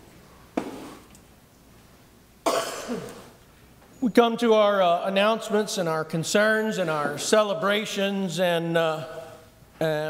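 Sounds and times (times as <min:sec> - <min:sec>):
person coughing: 0:02.4 - 0:03.4.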